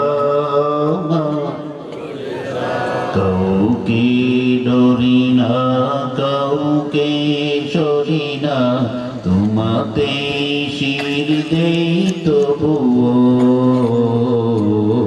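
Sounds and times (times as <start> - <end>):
man chanting: 0.0 - 1.8, 3.0 - 15.0.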